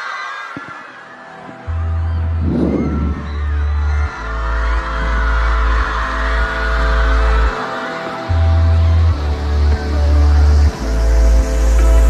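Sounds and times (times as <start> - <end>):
deep synth bass: 1.7 - 7.6, 8.3 - 12.0.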